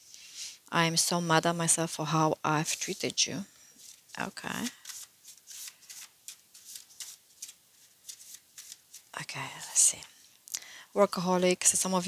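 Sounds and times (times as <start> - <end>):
cards being shuffled: 3.8 - 9.9.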